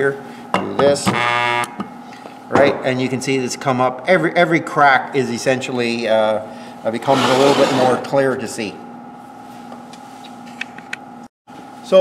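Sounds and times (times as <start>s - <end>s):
electrical hum: 0.0s - 12.0s
man speaking: 6.9s - 8.8s.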